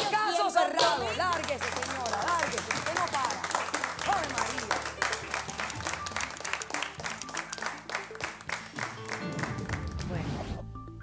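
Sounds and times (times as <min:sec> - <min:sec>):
music playing: 0:00.0 - 0:11.0
studio audience applauding: 0:00.8 - 0:10.2.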